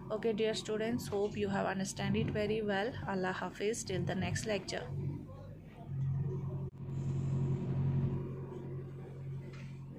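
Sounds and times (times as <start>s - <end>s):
low mechanical hum: 0.0s - 9.9s.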